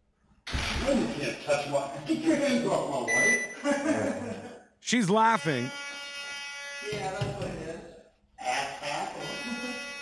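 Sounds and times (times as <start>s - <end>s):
short electronic beep: 3.1s - 3.6s.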